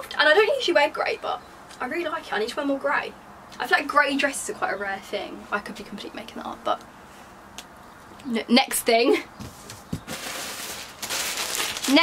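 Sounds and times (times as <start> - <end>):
plastic packaging rustling: 9.6 - 12.0.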